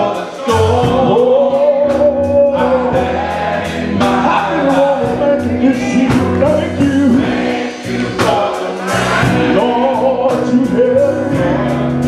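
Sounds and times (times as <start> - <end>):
men's gospel choir singing: 0.0 - 12.0.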